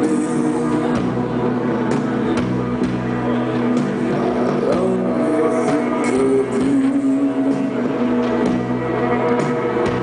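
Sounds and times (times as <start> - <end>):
live rock band droning chords: 0.0 - 10.0.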